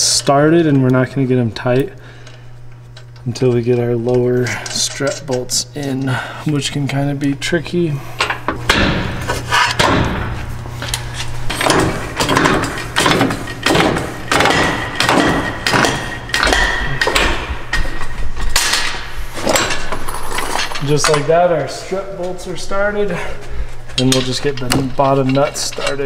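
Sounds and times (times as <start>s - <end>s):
metal clanks and knocks: 8.2s - 21.4s.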